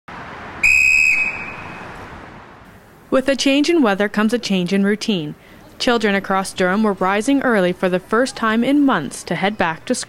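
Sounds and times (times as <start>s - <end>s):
street hiss: 0.1s - 3.8s
whistle blast: 0.6s - 2.0s.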